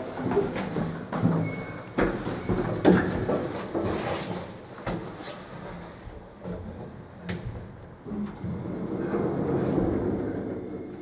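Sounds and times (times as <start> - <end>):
elevator car rumbling in shaft: 8.0 - 11.0.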